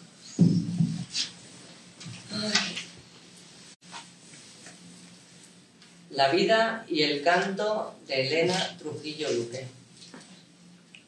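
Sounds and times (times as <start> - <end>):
microphone handling thump: 0.4 - 1.2.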